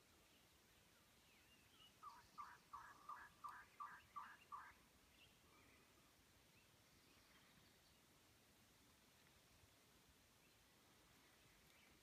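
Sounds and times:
faint high bird chirps: 0.2s - 8.0s
faint turkey yelps: 2.0s - 4.8s.

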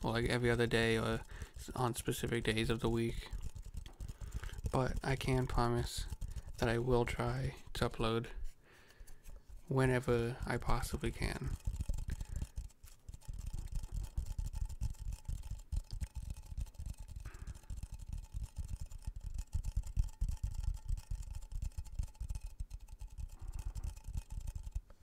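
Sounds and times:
fingertip tapping on object: 1.2s - 25.0s.

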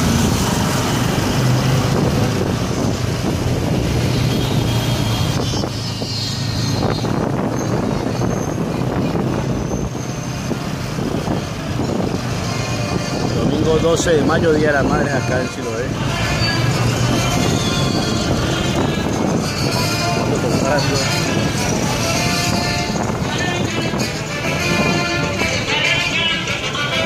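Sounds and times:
motorcycle and car engines: 0.0s - 27.0s
background voices: 12.4s - 27.0s.

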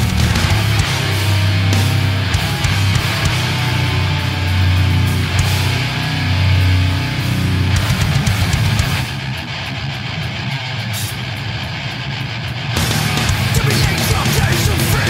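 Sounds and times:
death metal band playing: 0.0s - 15.0s.

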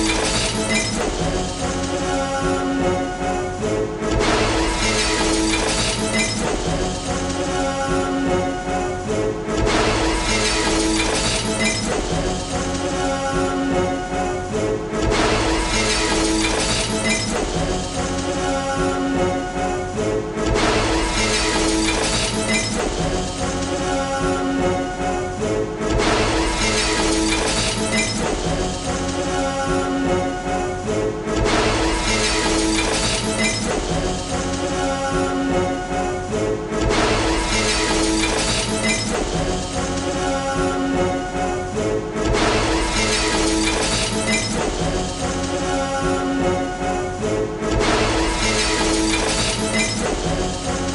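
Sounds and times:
film music with held notes: 0.0s - 50.9s.

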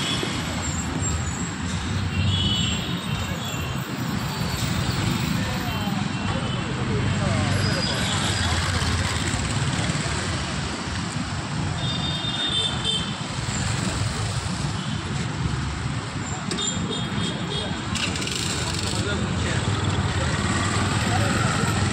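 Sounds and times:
road noise: 0.0s - 21.9s
voices in background: 3.0s - 10.5s, 16.2s - 21.9s.

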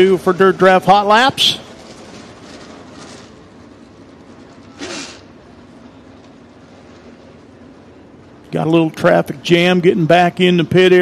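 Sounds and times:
distant race car engines: 0.0s - 11.0s.

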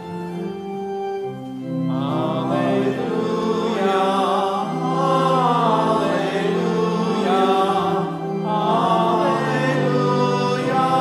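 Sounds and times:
congregation singing a chant: 1.5s - 11.0s.

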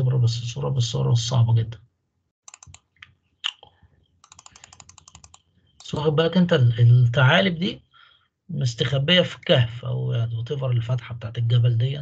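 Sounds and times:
computer mouse clicks: 2.4s - 3.6s, 4.2s - 6.0s.

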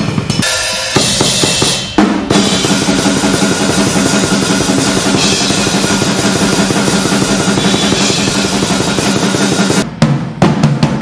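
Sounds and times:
cymbals crashing: 0.0s - 9.9s
fast metal drumming: 0.0s - 11.0s.

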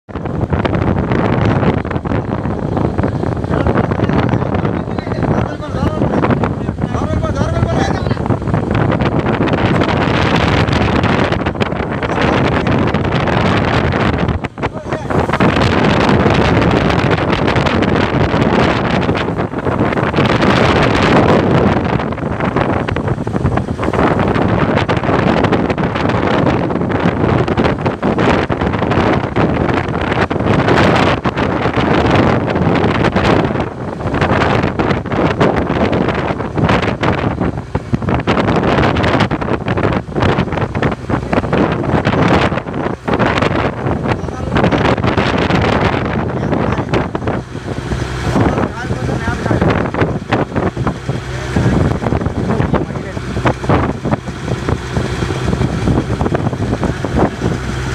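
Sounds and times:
waves: 0.1s - 55.8s
boat engine running: 0.1s - 57.9s
wind buffeting microphone: 0.1s - 57.9s.

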